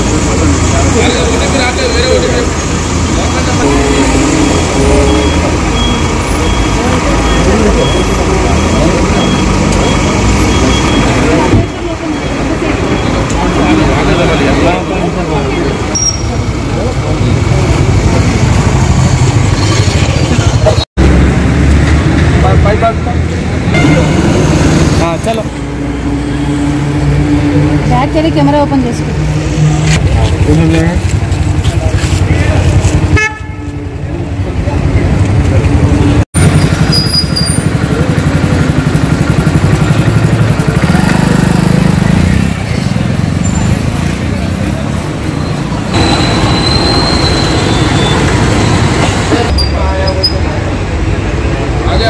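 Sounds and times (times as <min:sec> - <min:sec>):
people talking: 0:00.0 - 0:18.6, 0:22.4 - 0:24.2, 0:25.0 - 0:25.6, 0:27.8 - 0:33.0, 0:37.7 - 0:43.3, 0:49.2 - 0:52.0
road traffic: 0:00.0 - 0:52.0
vehicle engines idling: 0:00.0 - 0:52.0.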